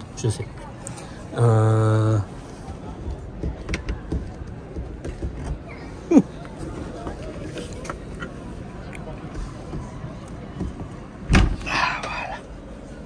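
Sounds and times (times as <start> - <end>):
background chatter: 0.0 - 13.0.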